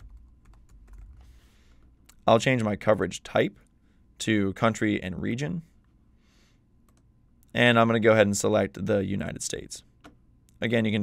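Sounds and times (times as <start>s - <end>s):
keyboard typing: 0.0s - 1.8s.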